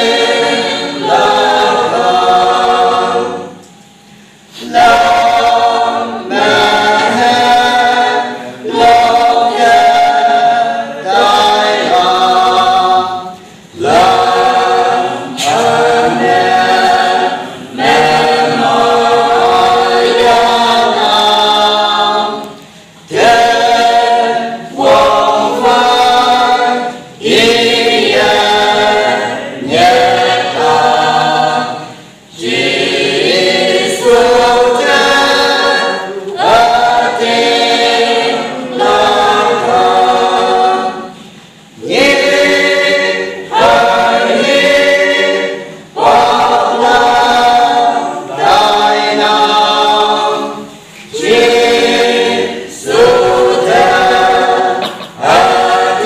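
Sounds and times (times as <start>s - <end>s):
choir singing a cappella: 0.0s - 56.0s.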